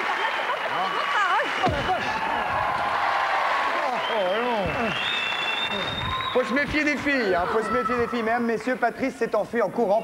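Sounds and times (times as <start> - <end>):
studio audience applauding: 0.0 - 9.3.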